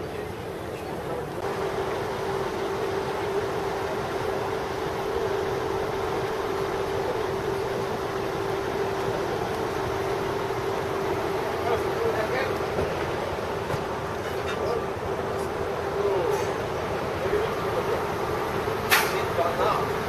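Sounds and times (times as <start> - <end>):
steady hum: 0.0 - 20.0.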